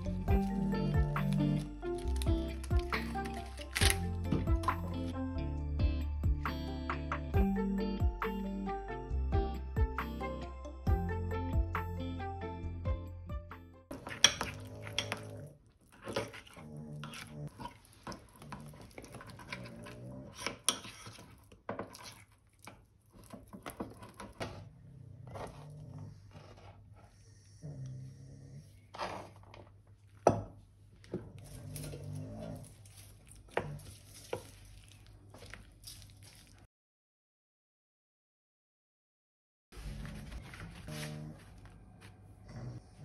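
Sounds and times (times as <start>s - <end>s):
spoon scraping ceramic bowl: 13.9s - 22.3s.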